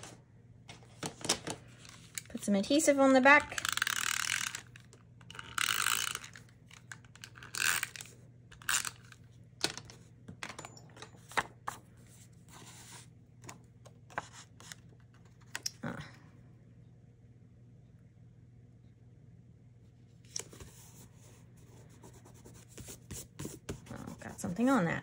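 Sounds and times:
paper handling: 8.8 - 15.6.

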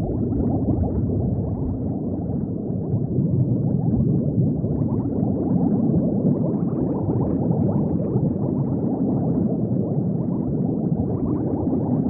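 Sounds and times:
underwater bubbling: 0.0 - 12.0.

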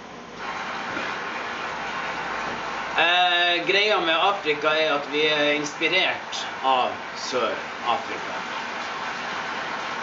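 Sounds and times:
steady rushing noise: 0.4 - 10.0.

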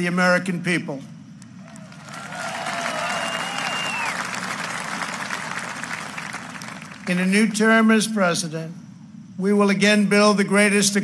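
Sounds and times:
cheering shouts: 1.7 - 6.8
audience applauding: 1.7 - 7.2.

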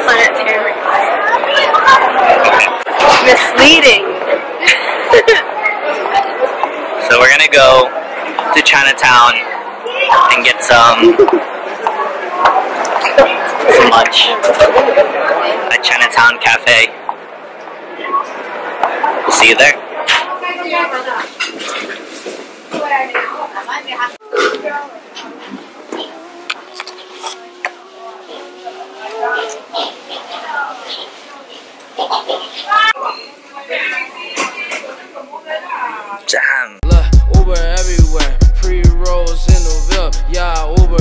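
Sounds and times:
woman laughing: 4.6 - 5.5, 11.0 - 11.4.

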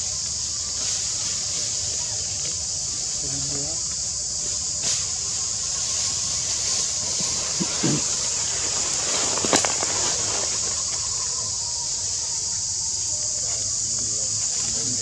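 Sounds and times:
forest insects droning: 0.0 - 15.0.

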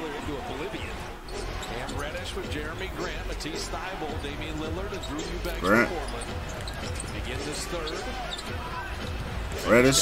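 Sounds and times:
sports commentary: 0.0 - 10.0.

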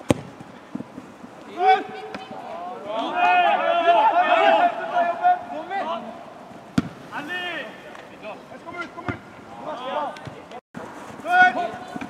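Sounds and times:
person shouting outdoors: 1.6 - 6.4
loud drawn-out call: 3.0 - 6.5.

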